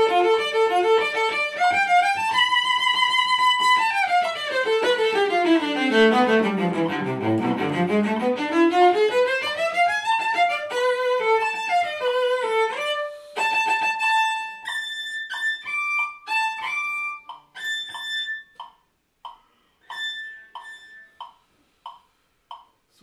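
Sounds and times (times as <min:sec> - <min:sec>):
cello being bowed: 0:00.0 - 0:18.7, 0:19.8 - 0:21.4.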